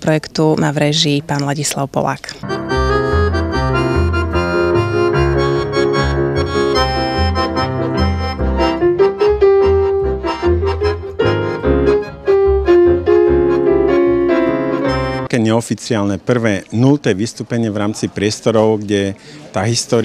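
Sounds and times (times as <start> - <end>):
accordion held tones: 2.4 - 15.3
piano: 2.4 - 15.3
plucked double bass: 2.4 - 15.3.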